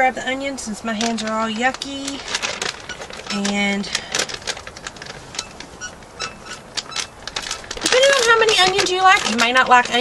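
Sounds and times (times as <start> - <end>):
person speaking: 0.0 - 4.4, 7.8 - 10.0
bag crinkling and crackling: 0.9 - 10.0.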